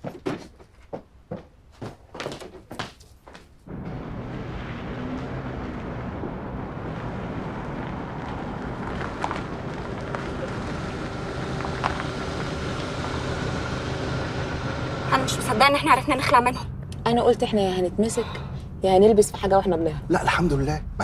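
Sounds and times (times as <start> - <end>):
tyres rolling slowly: 3.7 - 17.1
car engine rumble: 3.7 - 21.0.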